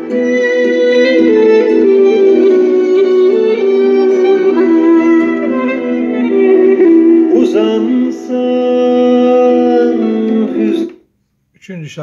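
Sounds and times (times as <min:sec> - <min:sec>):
guitar music from speakers: 0:00.0 - 0:10.9.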